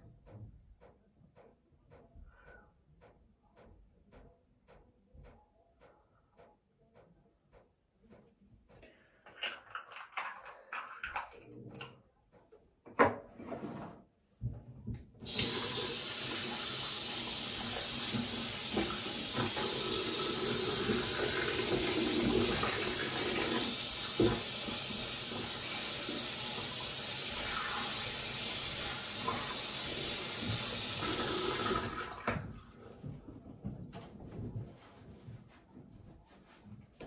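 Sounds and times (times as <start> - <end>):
sink tap running: 15.2 - 32.4.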